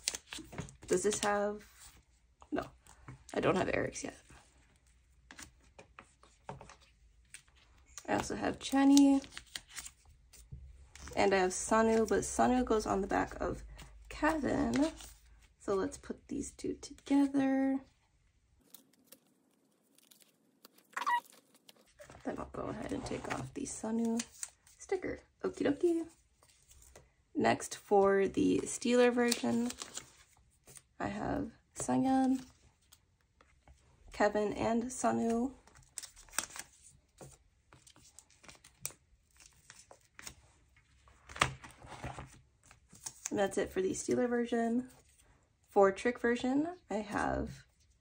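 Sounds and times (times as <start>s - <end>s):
binder page turning rustle: 0.0s - 2.0s, 8.2s - 12.2s, 18.6s - 24.8s, 29.1s - 30.8s, 35.2s - 43.4s
plastic sleeves crinkling and clicking: 5.2s - 11.2s, 18.6s - 22.3s.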